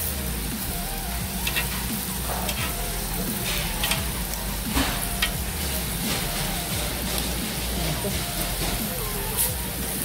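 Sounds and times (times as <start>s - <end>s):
meat sizzling on a grill: 0.0s - 10.0s.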